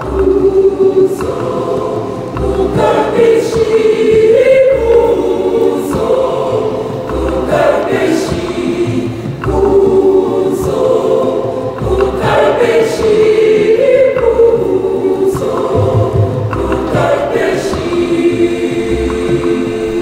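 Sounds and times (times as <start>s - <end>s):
choir singing in parts: 0.0s - 20.0s
hand drums beating: 0.0s - 20.0s.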